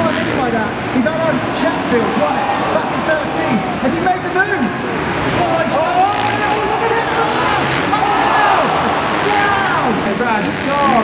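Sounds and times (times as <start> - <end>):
arena crowd noise: 0.0 - 11.0
motocross bike engines revving: 0.0 - 11.0.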